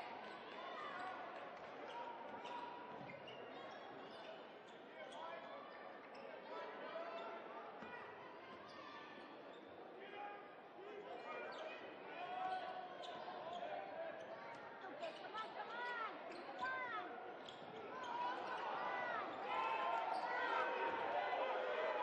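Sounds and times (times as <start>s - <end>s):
players and spectators voices: 0.0s - 22.0s
sneakers squeaking on floor: 15.8s - 18.6s.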